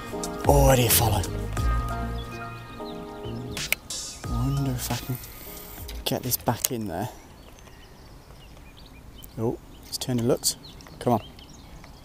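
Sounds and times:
distant bird chirps: 0.0 - 12.0.

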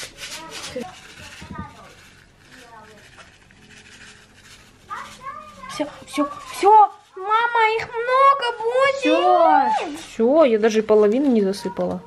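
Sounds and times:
faint background voices: 0.0 - 10.2
plastic packet rustling: 0.0 - 12.0.

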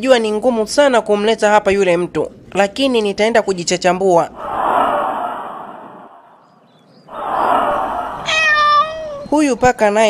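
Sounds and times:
cat hissing: 7.1 - 9.3
cat meowing: 8.2 - 9.3.

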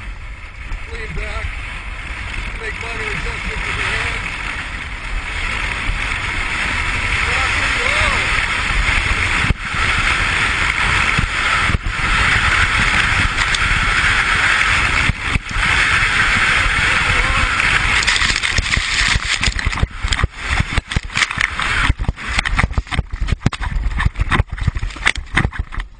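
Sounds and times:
wind on microphone: 0.0 - 25.9.

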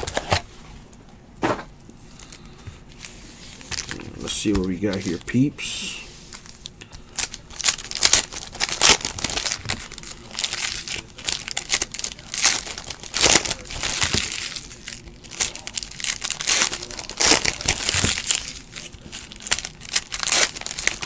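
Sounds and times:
foil wrappers crinkling and tearing: 0.0 - 0.4, 2.2 - 21.0.

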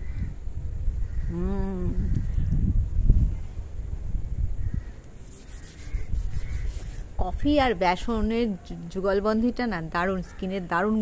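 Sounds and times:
rubbing and scratching: 5.0 - 7.6.

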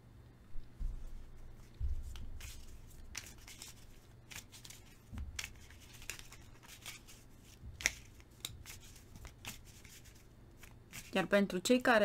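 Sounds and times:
cards being shuffled: 1.6 - 11.2.

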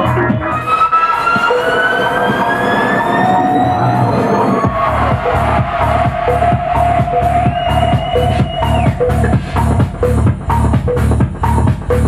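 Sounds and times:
electronic dance music: 0.0 - 12.0
rising synth sweeps: 0.4 - 10.2
kick drum beat: 4.7 - 12.0.

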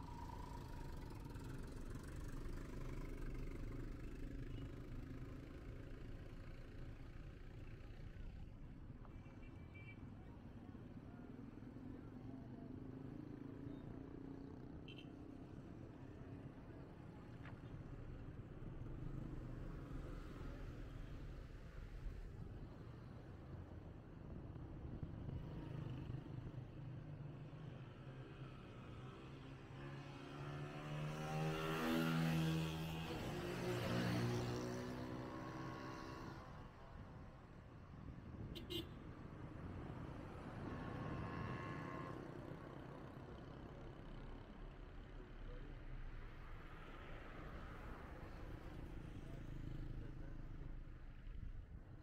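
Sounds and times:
car and rickshaw engines running: 0.0 - 52.0
low rumble of road traffic: 0.0 - 52.0.

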